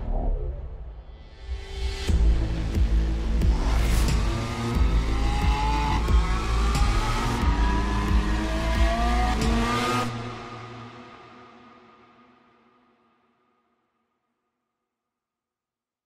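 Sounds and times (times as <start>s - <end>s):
film score with heavy bass: 0.0s - 13.0s.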